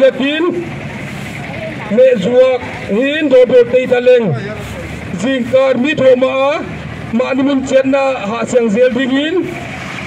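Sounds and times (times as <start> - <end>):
street noise hiss: 0.0 - 10.0.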